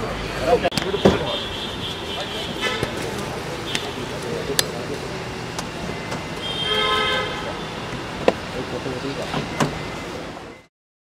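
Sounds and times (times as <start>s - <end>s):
street noise: 0.0s - 10.7s
car horn: 0.5s - 4.2s, 6.3s - 8.0s.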